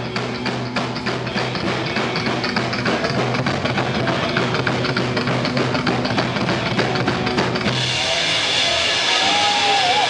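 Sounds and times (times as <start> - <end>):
drum kit: 0.0 - 10.0
electric guitar: 0.0 - 10.0
upright bass: 0.0 - 10.0.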